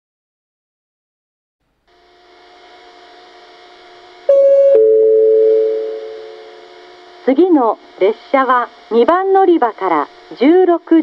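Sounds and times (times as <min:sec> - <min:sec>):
faint hum and hiss: 0:01.6 - 0:11.0
two-note descending chime: 0:04.3 - 0:06.6.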